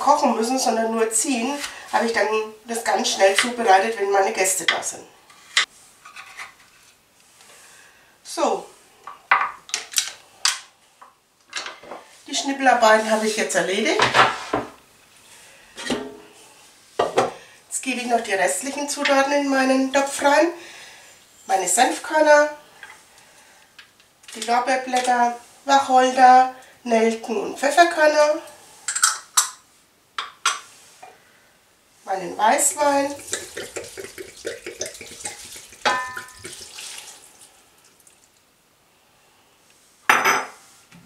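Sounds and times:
small glass dishes clinking on pot: 33.2s - 36.7s.

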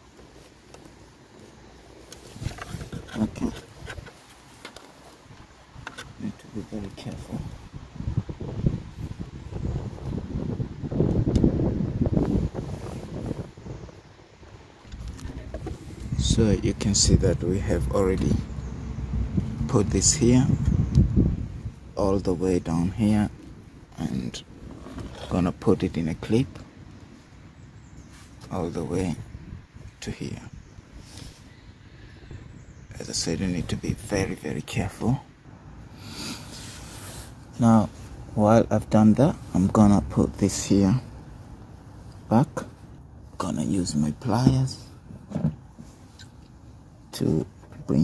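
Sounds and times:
rubber hose handling noise: 0.0s - 6.4s, 44.3s - 46.5s
wind buffeting microphone: 5.2s - 26.8s, 28.8s - 31.1s.

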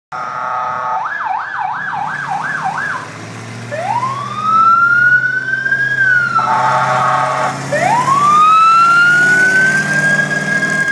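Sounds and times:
siren wailing: 0.1s - 3.1s, 3.7s - 10.9s
vehicle engine humming: 0.1s - 10.9s.

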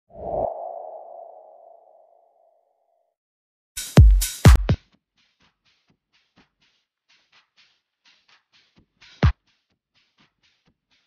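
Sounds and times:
loud swoosh: 0.1s - 2.2s.

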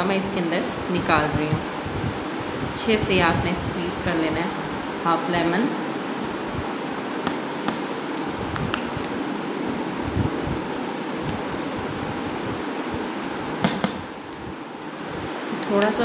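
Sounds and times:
steady background hiss: 0.0s - 16.0s
sharp taps: 13.6s - 14.0s.

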